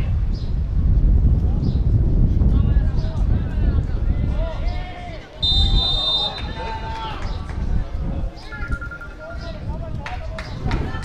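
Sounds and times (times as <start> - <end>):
distant shouting voices: 4.2 - 7.5
referee's whistle blast: 5.4 - 6.7.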